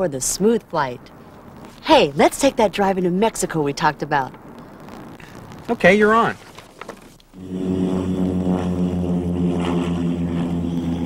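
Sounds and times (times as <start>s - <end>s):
propeller airplane engine idling: 6.4s - 11.0s.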